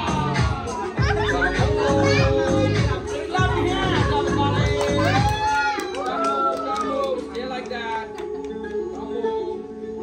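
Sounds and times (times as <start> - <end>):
music with steady beat: 0.0 - 6.2
children's voices: 1.5 - 4.3.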